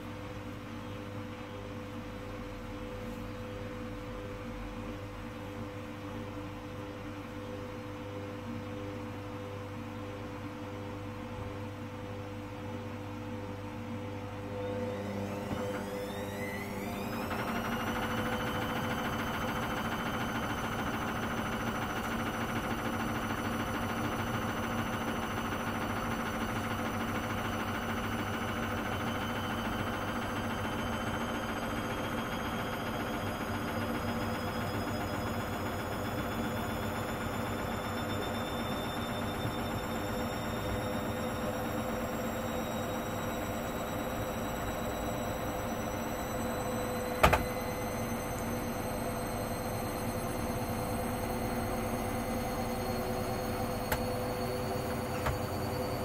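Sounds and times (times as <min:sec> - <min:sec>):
washing machine spin whine: 0:00.0 - 0:56.0.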